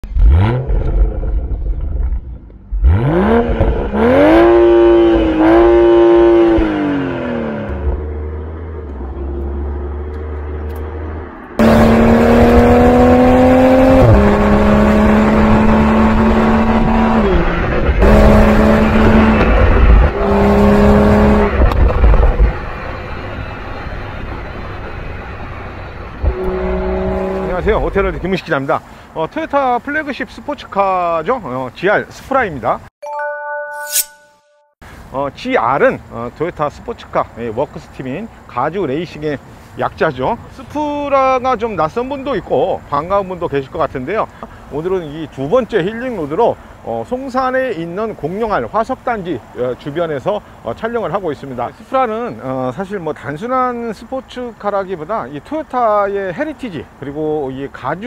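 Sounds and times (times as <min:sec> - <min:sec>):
car exhaust revving and accelerating: 0:00.0 - 0:28.1.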